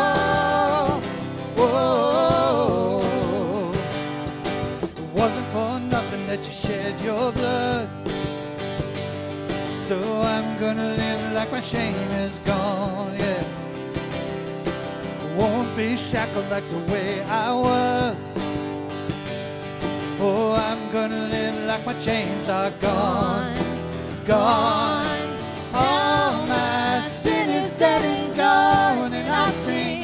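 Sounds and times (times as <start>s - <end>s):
people singing: 0.0s - 4.0s, 20.2s - 30.0s
hand drum beat: 0.0s - 30.0s
strummed acoustic guitar: 0.0s - 30.0s.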